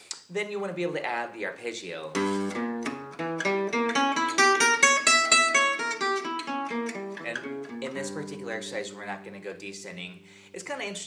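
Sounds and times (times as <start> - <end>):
acoustic guitar arpeggio: 2.1 - 10.6.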